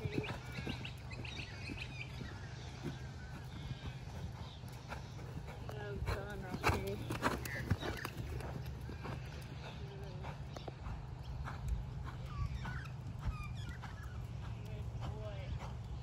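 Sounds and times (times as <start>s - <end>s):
horse hoofbeats on sand: 0.0s - 16.0s.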